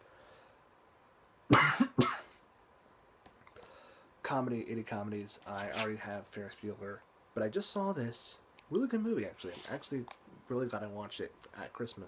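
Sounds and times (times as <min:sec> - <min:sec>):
man coughing: 0:01.5 - 0:02.4.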